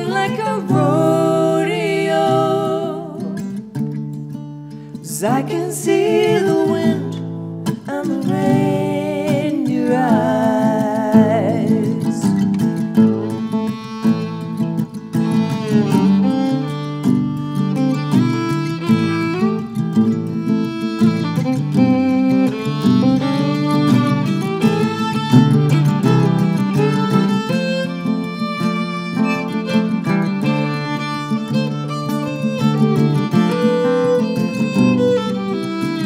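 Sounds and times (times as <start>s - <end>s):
bowed fiddle playing: 0.0s - 3.4s, 11.3s - 36.0s
acoustic guitar strumming: 0.0s - 36.0s.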